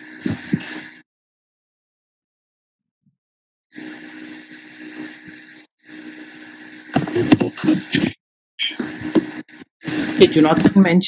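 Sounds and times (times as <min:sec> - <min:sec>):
steady hiss: 0:00.0 - 0:01.0, 0:03.7 - 0:10.8.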